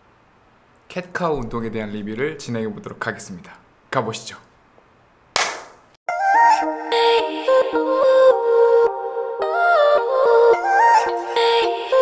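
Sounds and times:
sharp clap-like crack: 5.3 - 6.0.

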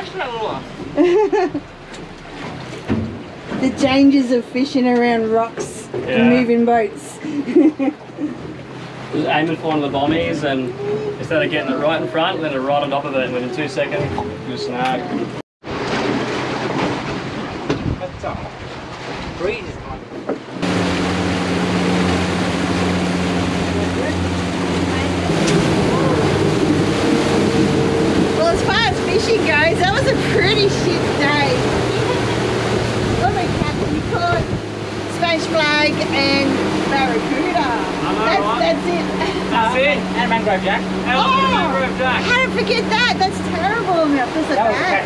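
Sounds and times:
outboard motor drone: 0.0 - 45.0
rushing water: 0.0 - 45.0
wind: 0.0 - 45.0.

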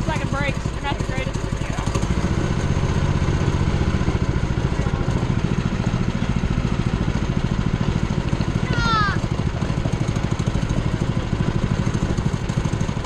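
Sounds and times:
go-kart engine puttering: 0.0 - 13.0.

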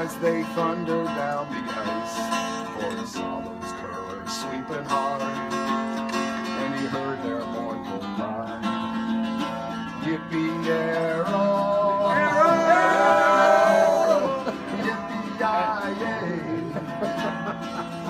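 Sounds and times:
strummed acoustic guitar: 0.0 - 18.0.

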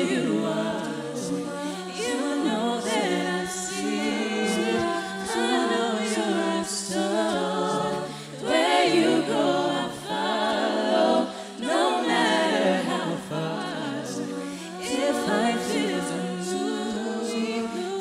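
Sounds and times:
backing vocal harmonies: 0.0 - 18.0
vocal percussion: 0.0 - 18.0
woman singing lead: 0.0 - 18.0.

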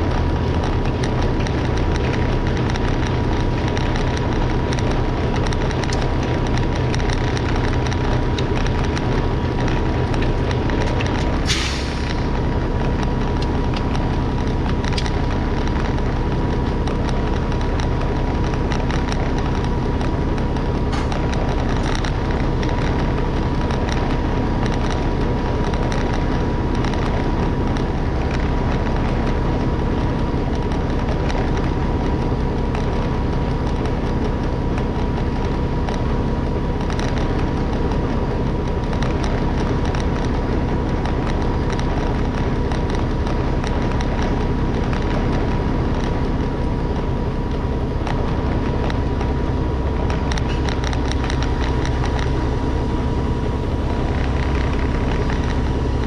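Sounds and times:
diesel truck engine idling: 0.0 - 56.0
thin steady whine: 0.0 - 56.0.

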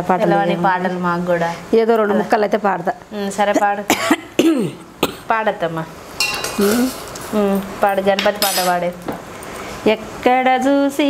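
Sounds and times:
women talking: 0.0 - 4.2, 6.5 - 9.2, 9.8 - 11.0
short cough: 3.9 - 5.2.

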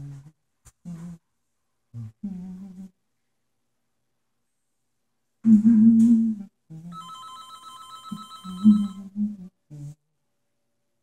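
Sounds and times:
person humming: 0.0 - 1.2, 2.0 - 3.0, 5.4 - 7.0, 8.4 - 10.0
telephone ringing: 6.9 - 9.1.

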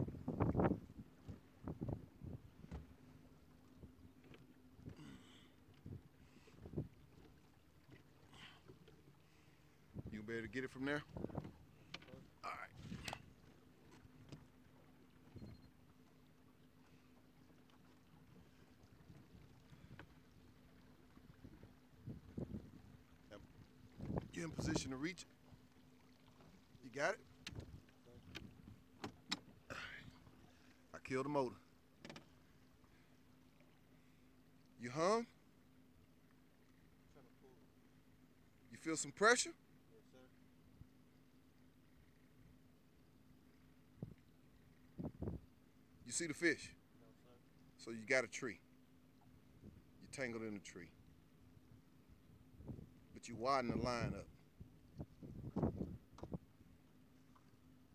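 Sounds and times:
faint boat motor hum: 0.0 - 57.9.

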